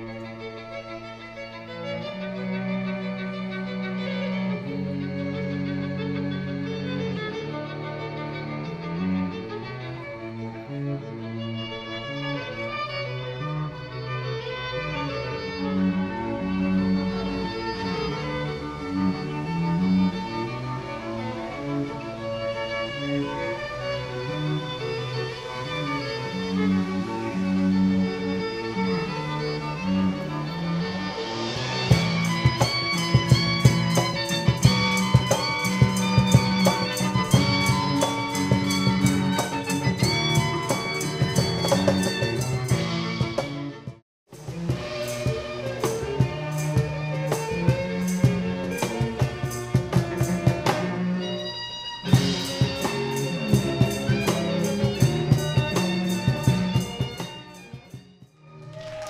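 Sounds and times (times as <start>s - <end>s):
violins and cello playing: 0.0s - 59.0s
drum kit beat: 31.3s - 51.0s, 52.1s - 58.1s.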